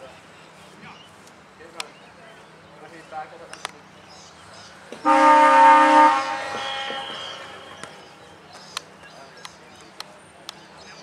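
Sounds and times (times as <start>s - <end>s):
ground siren: 5.1s - 8.0s.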